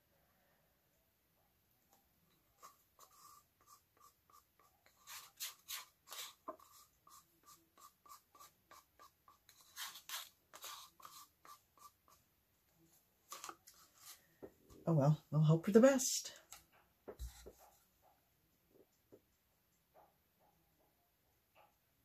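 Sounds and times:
paint ticking and tapping on canvas: 2.3s - 12.3s, 16.5s - 22.0s.

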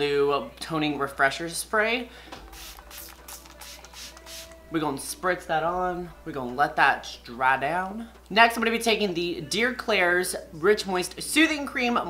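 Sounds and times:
faint background music: 0.0s - 12.0s
spray bottle hissing: 2.4s - 4.6s.

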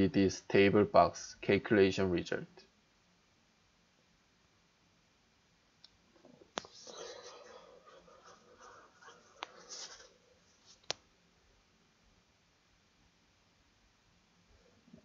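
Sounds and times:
faint low murmur: 5.9s - 15.0s.

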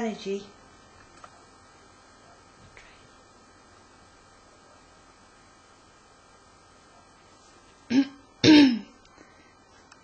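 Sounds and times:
person clearing throat: 7.9s - 9.0s.

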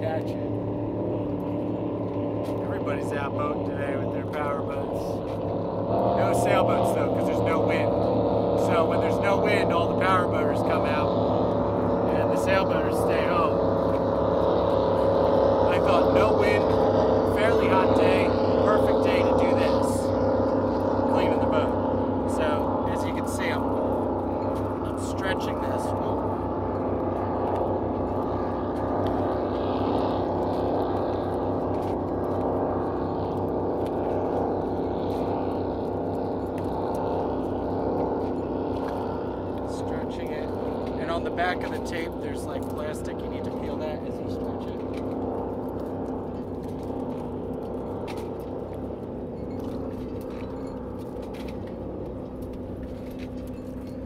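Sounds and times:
powerboat engine droning: 0.0s - 54.0s.

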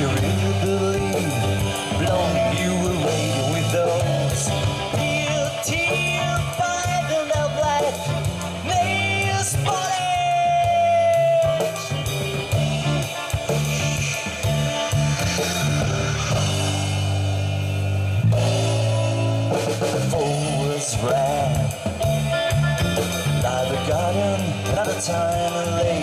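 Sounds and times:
live rock band playing: 0.0s - 26.0s.

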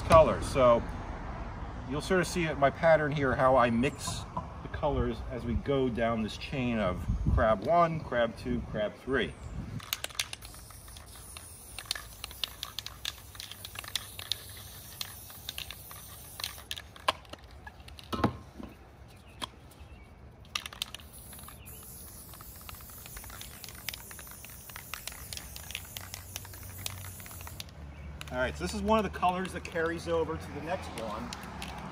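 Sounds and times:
spray paint can hissing: 9.8s - 18.1s, 20.4s - 30.2s, 30.9s - 31.9s.

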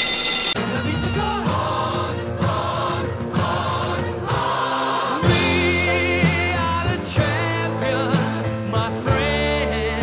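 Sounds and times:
choir singing: 0.6s - 9.8s.

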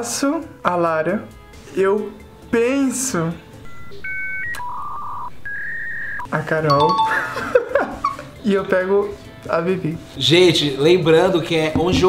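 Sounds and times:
electronic beeps: 3.6s - 7.3s.

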